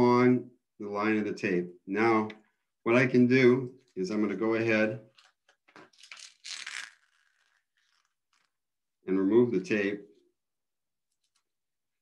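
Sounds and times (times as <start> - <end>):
paper and tape rustling: 5.1 - 8.6.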